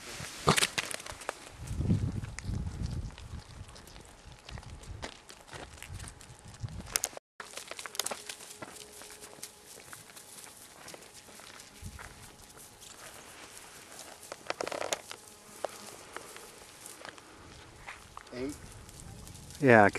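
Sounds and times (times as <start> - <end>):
footsteps through dry grass: 0.0 - 19.9.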